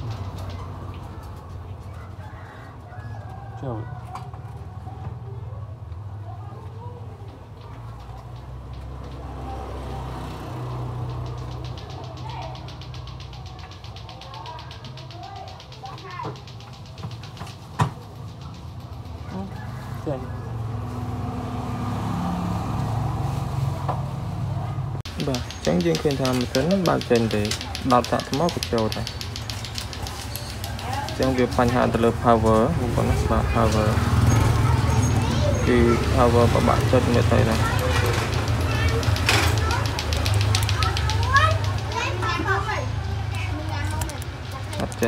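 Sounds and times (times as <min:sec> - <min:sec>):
children chattering and calling: 0:00.0 - 0:45.0.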